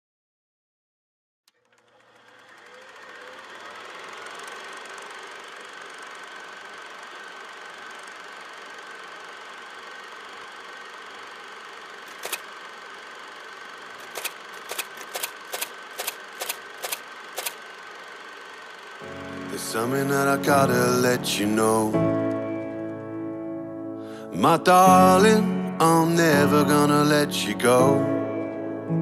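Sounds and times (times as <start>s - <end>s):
mechanical hum with high whine: 1.6s - 21.8s
sharp clicks: 12.1s - 12.5s, 14.0s - 17.6s.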